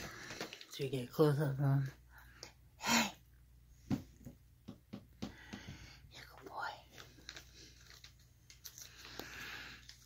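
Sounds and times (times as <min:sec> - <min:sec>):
soft breathy sound: 0:08.6 - 0:10.0.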